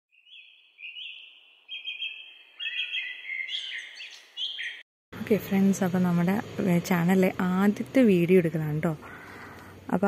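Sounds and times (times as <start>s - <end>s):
songbird whistled chirps: 0.1s - 4.8s.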